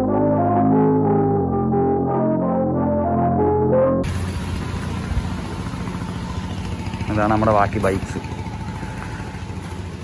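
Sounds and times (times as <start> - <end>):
engine idling: 4.0 - 10.0.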